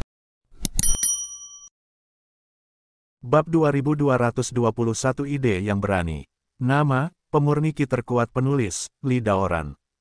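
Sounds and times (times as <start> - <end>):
bright bell ding: 0.8 - 1.7.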